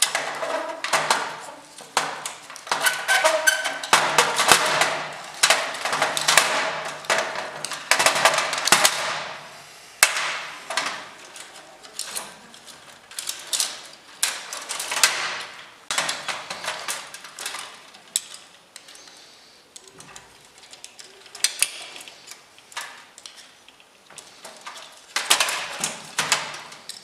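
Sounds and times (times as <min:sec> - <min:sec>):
metal parts clattering: 0:00.0 - 0:09.4, 0:10.7 - 0:19.2, 0:19.8 - 0:27.0.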